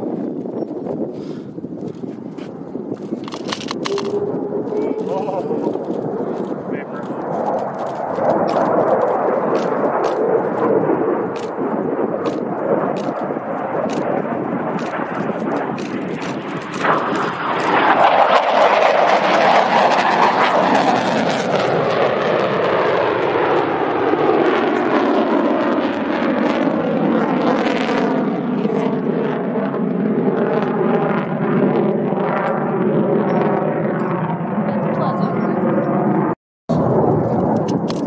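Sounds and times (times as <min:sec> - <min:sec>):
falling whoosh of passing jet: 0:00.0 - 0:34.7
jet engine roar: 0:00.0 - 0:38.0
sharp crackles: 0:01.8 - 0:18.9.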